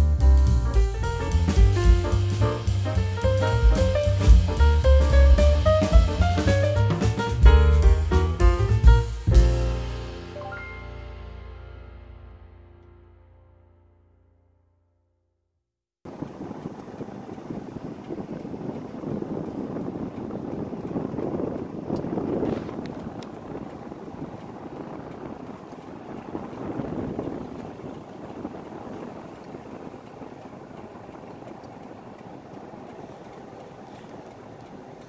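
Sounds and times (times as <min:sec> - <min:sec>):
car road and engine rumble: 0:00.0 - 0:10.0, 0:16.1 - 0:35.0.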